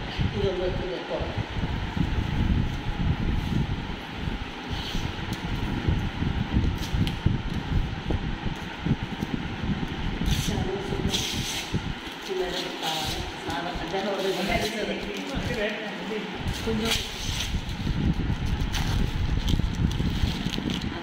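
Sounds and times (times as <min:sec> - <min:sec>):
microphone handling rumble: 0:01.3 - 0:12.3, 0:16.4 - 0:21.0.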